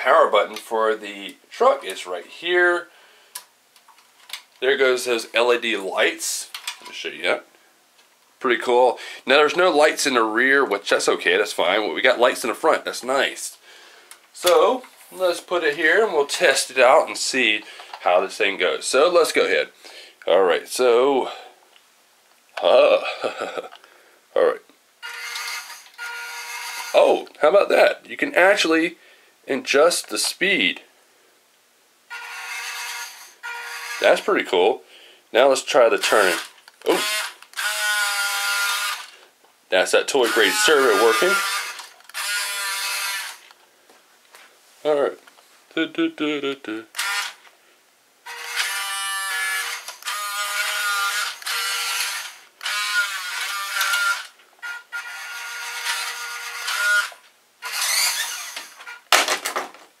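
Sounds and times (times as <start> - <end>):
toy truck motor whining: 25.0 - 27.0, 32.1 - 34.2, 36.0 - 39.1, 40.3 - 43.4, 46.9 - 47.4, 48.3 - 59.0
electric motor whining: 48.3 - 58.8.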